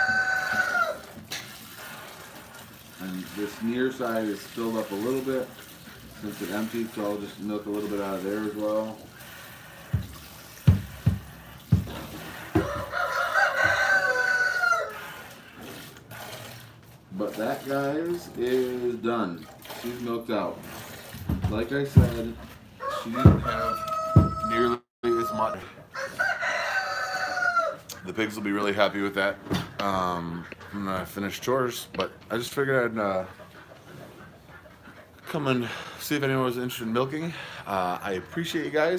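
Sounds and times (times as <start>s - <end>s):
rooster crowing: 0.0s - 1.0s, 12.5s - 15.1s, 22.8s - 27.8s
dull thumps: 9.9s - 13.0s, 21.2s - 22.4s, 23.2s - 24.6s.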